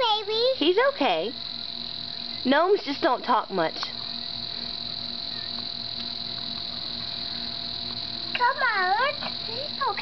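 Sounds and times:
insect chorus drone: 0.0 - 10.0.

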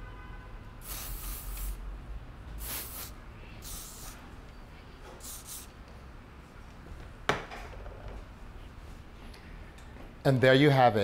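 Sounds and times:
aerosol can spraying: 0.8 - 1.8, 2.6 - 4.2, 5.2 - 5.7.

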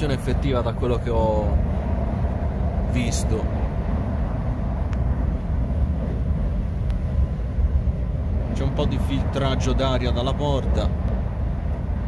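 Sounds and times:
train low rumble: 0.0 - 12.0.

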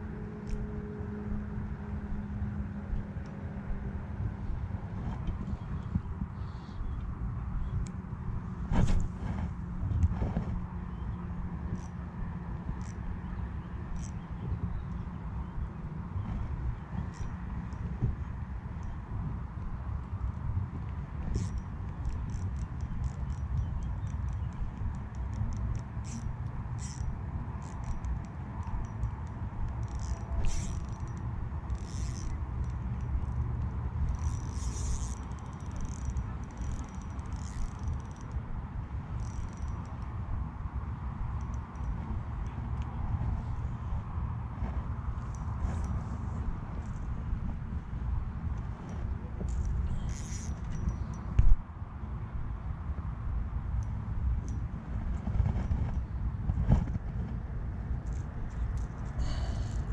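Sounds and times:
steady low rumble: 0.0 - 59.9
fishing reel winding: 11.7 - 12.0, 12.7 - 15.6, 16.7 - 18.0, 20.9 - 40.2, 41.3 - 43.0, 48.6 - 51.3, 58.0 - 59.9
scraping and clicking handling noises: 27.6 - 38.3.

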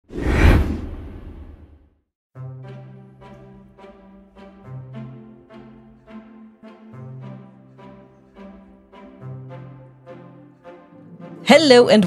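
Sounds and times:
whoosh sound effect: 0.1 - 1.7.

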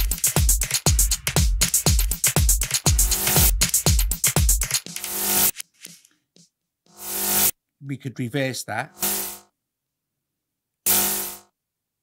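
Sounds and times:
electronic cymbal sample: 6.9 - 7.5, 9.0 - 9.5, 10.9 - 11.5.

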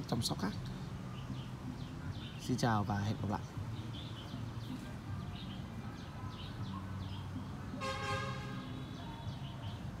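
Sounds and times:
low rumble of traffic: 0.0 - 10.0
vehicle horn toot: 7.8 - 8.7.

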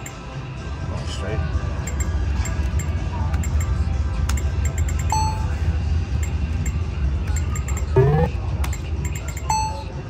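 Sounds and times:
brief electronic beep: 8.0 - 8.3.

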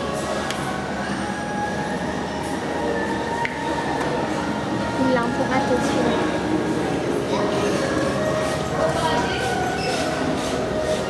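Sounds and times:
indoor crowd din: 0.0 - 11.0.

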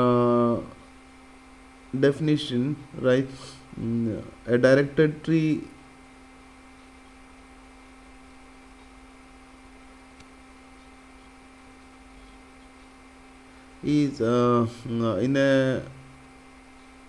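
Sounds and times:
man speaking: 0.0 - 0.8, 2.0 - 5.8, 13.8 - 16.0
faint electrical hum: 0.0 - 17.0.

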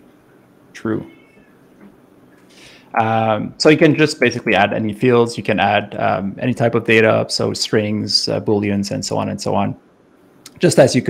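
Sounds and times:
person speaking: 2.5 - 9.8, 10.4 - 11.0.

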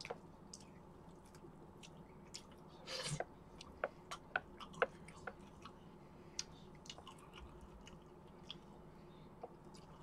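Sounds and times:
person chewing food: 0.0 - 8.8, 9.4 - 10.0.

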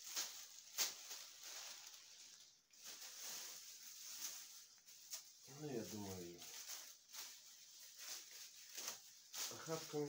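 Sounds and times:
branches and leaves rustling: 0.0 - 10.0.

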